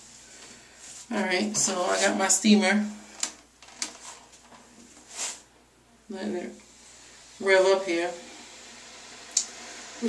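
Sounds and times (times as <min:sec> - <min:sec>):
garment steamer hissing: 0:06.6 - 0:10.0.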